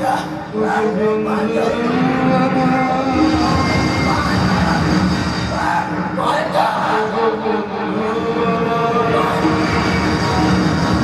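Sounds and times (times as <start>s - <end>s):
loud background music: 0.0s - 11.0s.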